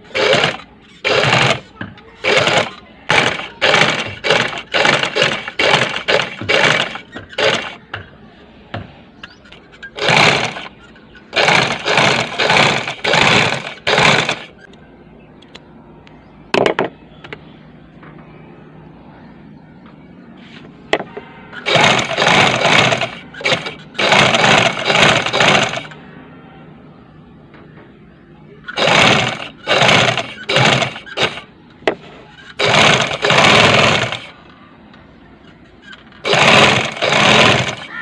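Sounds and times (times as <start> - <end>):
sewing machine stitching: 0.0 - 7.8, 9.8 - 14.6, 21.6 - 25.9, 28.7 - 31.5, 32.4 - 34.3, 35.8 - 38.0.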